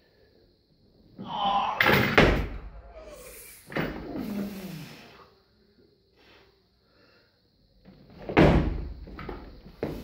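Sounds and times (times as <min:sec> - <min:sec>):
man straining aloud: 0:01.2 - 0:02.1
heavy thuds of barbell and feet: 0:08.2 - 0:10.0.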